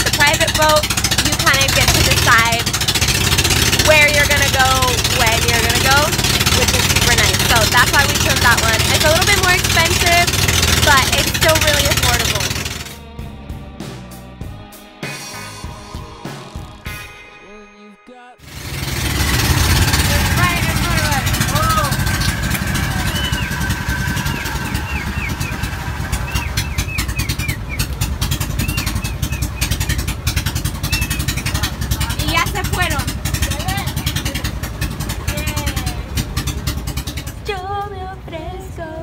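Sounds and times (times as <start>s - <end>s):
voices calling out: 0.0s - 12.9s, 18.4s - 37.8s
boat engine running: 0.0s - 14.6s, 15.3s - 17.2s, 18.4s - 39.0s
wind: 18.4s - 39.0s.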